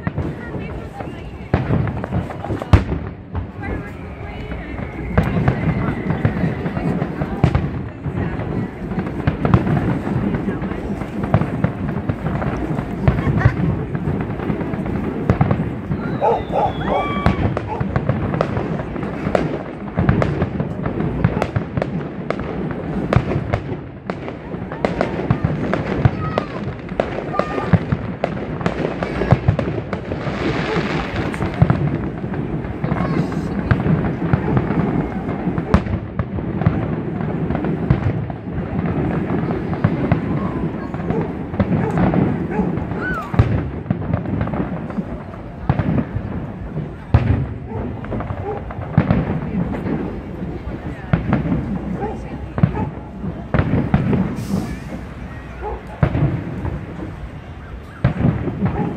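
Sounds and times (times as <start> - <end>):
fireworks bangs and crackles: 0.0 - 58.9.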